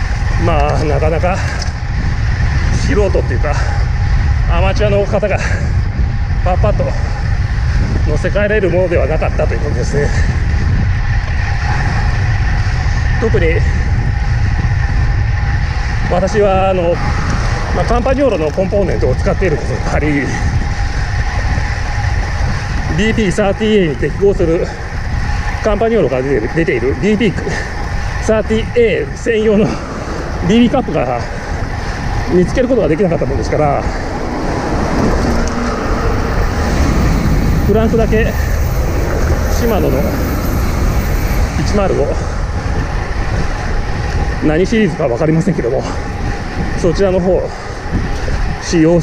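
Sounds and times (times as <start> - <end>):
tyre road noise: 0.0 - 49.0
wind buffeting microphone: 0.0 - 49.0.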